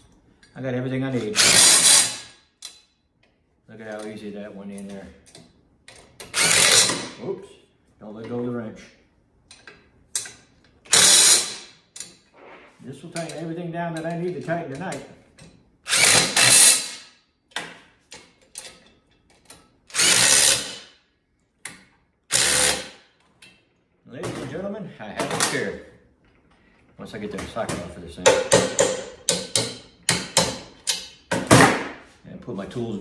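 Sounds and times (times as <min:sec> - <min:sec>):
impact wrench burst: 0:01.4 - 0:02.4, 0:06.3 - 0:07.2, 0:10.9 - 0:11.8, 0:15.9 - 0:17.1, 0:19.9 - 0:20.9, 0:22.3 - 0:23.0.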